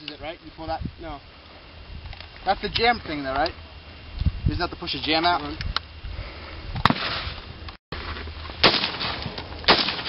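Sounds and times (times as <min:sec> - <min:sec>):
rifle shots with echo: 0:08.6 - 0:10.0.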